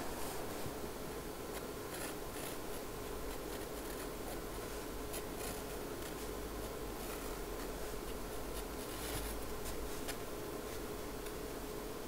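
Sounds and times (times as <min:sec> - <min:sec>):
faint steady hum: 0:00.0 - 0:12.0
pencil scratching on paper: 0:01.9 - 0:10.2.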